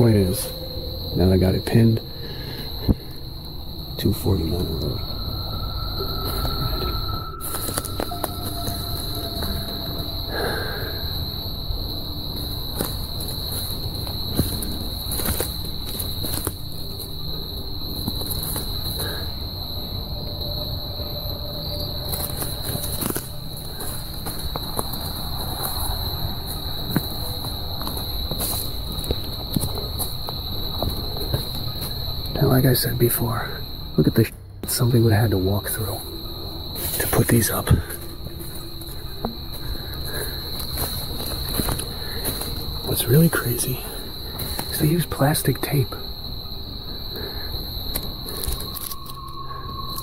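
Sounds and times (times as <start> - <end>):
high-pitched insect chorus: 0.0 - 50.0.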